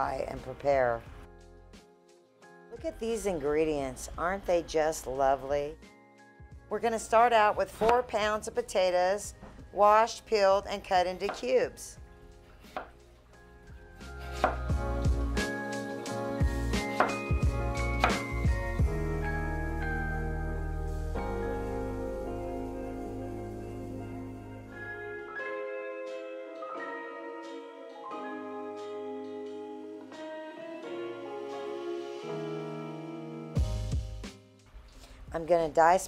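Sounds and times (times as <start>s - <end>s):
instrumental music with sustained chords: 12.0s - 34.7s
knife slicing potato on wooden board: 14.2s - 14.7s.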